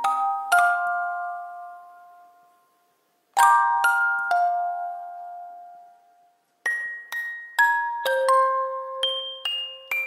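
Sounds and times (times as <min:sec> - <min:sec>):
bell-like lullaby notes: 0:00.0 - 0:10.0.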